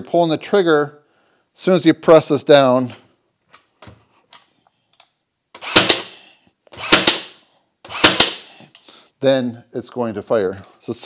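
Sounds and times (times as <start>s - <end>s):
nail gun firing: 5.6s - 8.6s.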